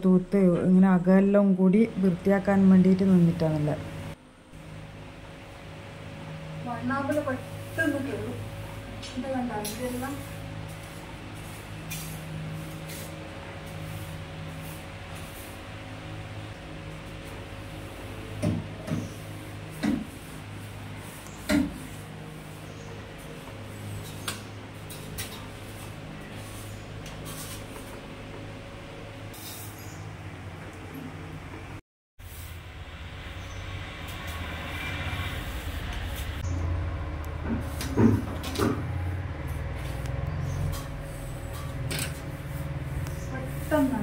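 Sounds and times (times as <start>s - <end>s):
steady low hum: 0.0s - 44.0s.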